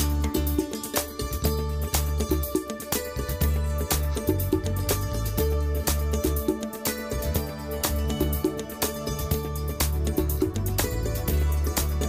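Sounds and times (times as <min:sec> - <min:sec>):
sustained bass: 0:01.2 - 0:02.5, 0:03.2 - 0:06.5, 0:07.1 - 0:12.0.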